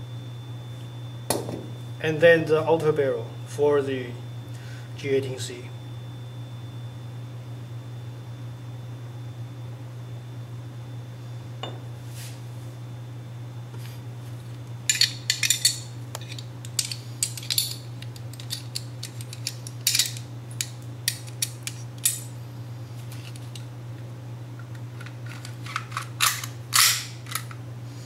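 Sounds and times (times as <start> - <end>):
metal pistol parts clicking: 14.9 - 22.3, 25.0 - 27.6.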